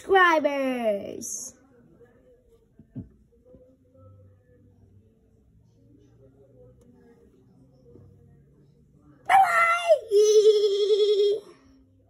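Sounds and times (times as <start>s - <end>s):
child screaming: 9.3s - 11.4s.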